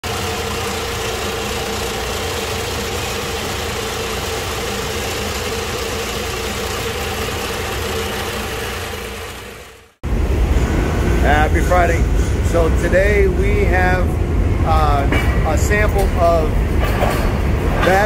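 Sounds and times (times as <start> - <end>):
mill grinding batteries: 0.0 - 10.0.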